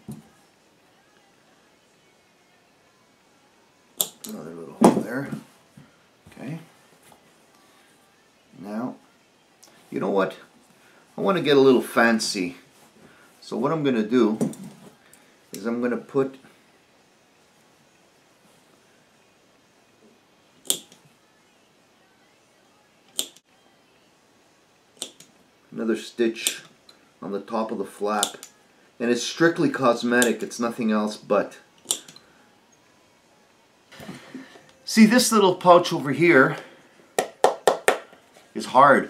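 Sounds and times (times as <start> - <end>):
sharp click: 20.6 - 21.0, 23.1 - 23.4, 25.0 - 25.3, 31.8 - 32.2.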